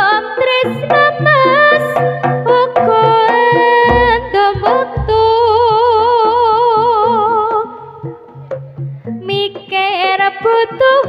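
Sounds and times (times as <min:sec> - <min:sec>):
bass line: 0:00.8 - 0:08.0
light drum strokes: 0:00.9 - 0:06.5.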